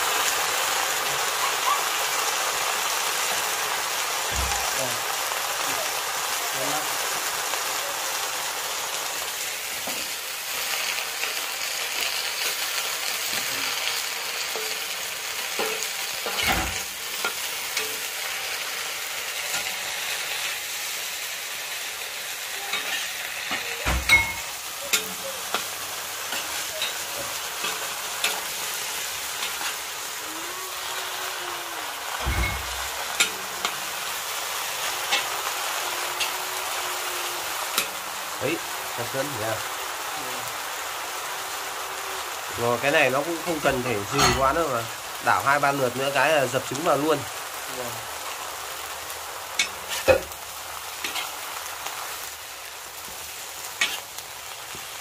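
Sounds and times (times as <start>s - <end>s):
greens sizzling in a wok: 0.0s - 55.0s
metal spatula scraping wok: 12.0s - 20.8s, 22.4s - 36.8s, 49.6s - 50.4s, 51.0s - 51.4s, 53.0s - 54.9s.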